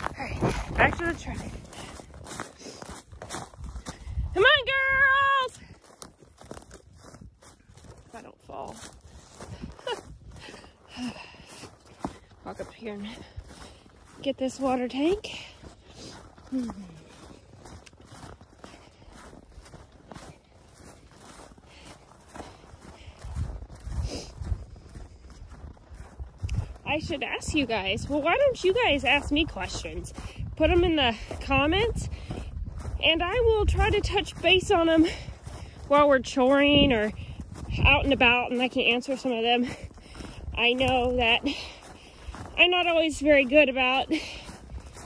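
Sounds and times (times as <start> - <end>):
footsteps crunching on snow: 0.0 - 45.0.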